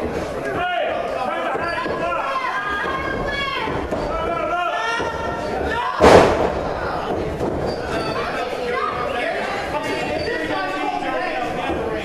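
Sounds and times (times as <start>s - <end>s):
crowd voices and shouts: 0.0s - 12.0s
body slamming onto ring canvas: 6.0s - 6.8s.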